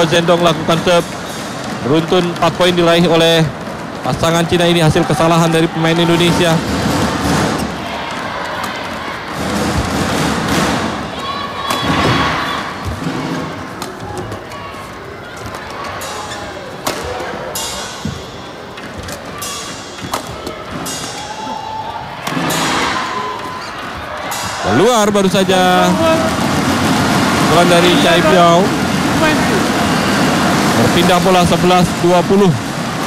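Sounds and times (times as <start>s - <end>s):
crowd noise with voices: 0.0s - 33.0s
thuds from players: 11.7s - 14.4s
racket striking shuttlecock: 16.8s - 21.4s, 22.2s - 24.6s.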